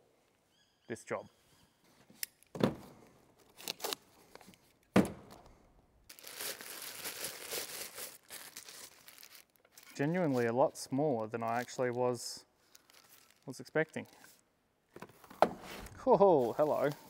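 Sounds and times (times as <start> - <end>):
packing material crinkling: 3.4 - 4.8, 6.1 - 14.4, 16.1 - 17.0.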